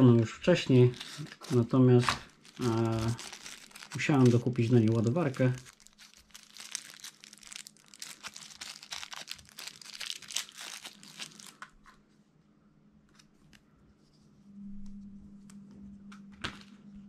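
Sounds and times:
plastic bag crinkling: 0:00.6 - 0:11.7.

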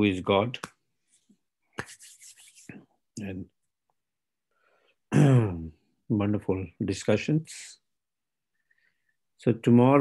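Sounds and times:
person clearing throat: 0:05.1 - 0:05.7.

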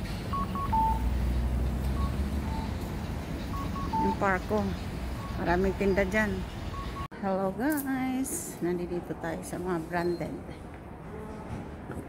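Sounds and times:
low street rumble: 0:00.0 - 0:09.8
electronic beeping pattern: 0:00.3 - 0:01.1, 0:02.0 - 0:04.4, 0:05.1 - 0:07.1.

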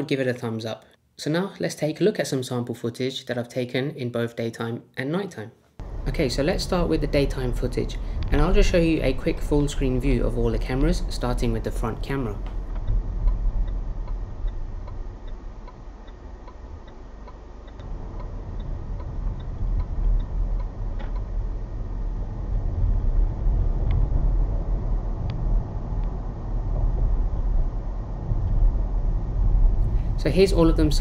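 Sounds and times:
car engine and road rumble: 0:05.8 - 0:31.0
turn indicator ticking: 0:10.2 - 0:21.6.

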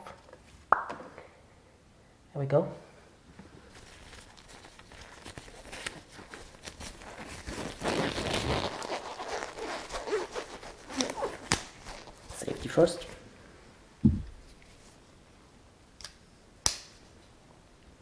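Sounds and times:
disposable gloves rustling: 0:03.5 - 0:13.2
glove clicks and snaps: 0:04.1 - 0:12.2, 0:16.0 - 0:17.1.

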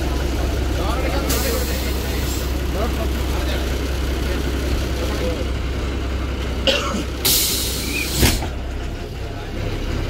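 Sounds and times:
bus diesel engine droning: 0:00.0 - 0:10.0.

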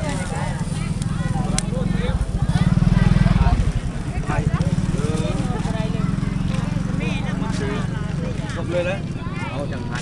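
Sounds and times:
chatter of voices: 0:00.0 - 0:10.0
small engine idling: 0:00.0 - 0:10.0.

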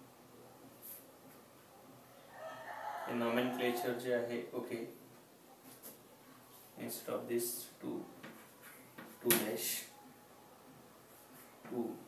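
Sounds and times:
rooster crowing: 0:02.1 - 0:04.1.

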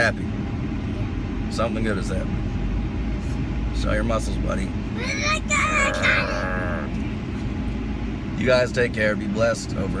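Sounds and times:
car cabin road noise: 0:00.0 - 0:10.0
boy's drawn-out vocal sound: 0:05.0 - 0:07.0.

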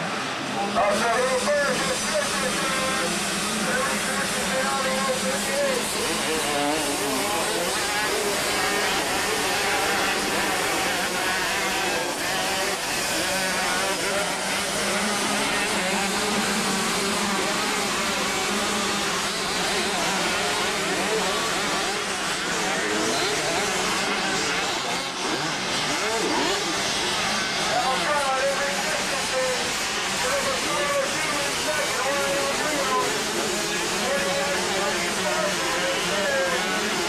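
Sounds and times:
steady wash of noise: 0:00.0 - 0:22.9
motorcycle engines revving: 0:00.0 - 0:37.0.

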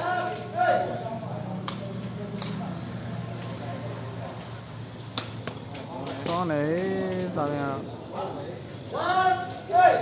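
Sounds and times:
background murmur: 0:00.0 - 0:10.0.

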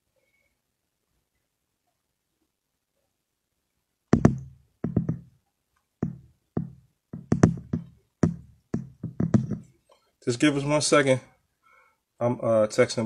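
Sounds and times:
sharp loud knocks: 0:04.1 - 0:05.3, 0:06.0 - 0:09.7.

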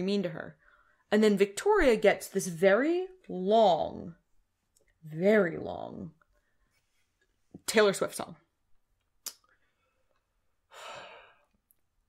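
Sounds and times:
person sighing: 0:10.7 - 0:11.5.

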